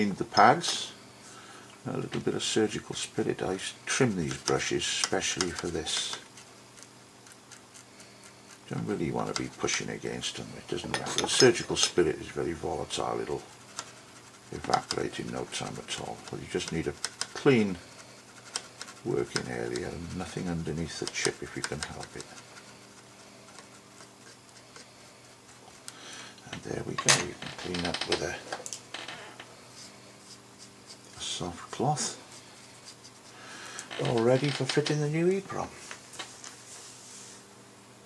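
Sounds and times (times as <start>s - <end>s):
steady low hum: 0.0s - 38.0s
brush scrubbing circuit board: 2.4s - 25.9s, 29.6s - 34.4s.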